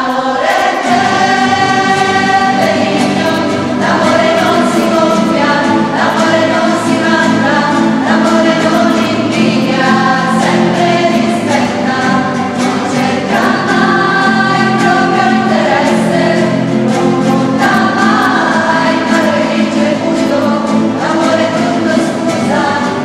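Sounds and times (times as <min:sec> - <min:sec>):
acoustic guitars: 0:00.0 - 0:23.0
women singing a hymn: 0:00.0 - 0:23.0.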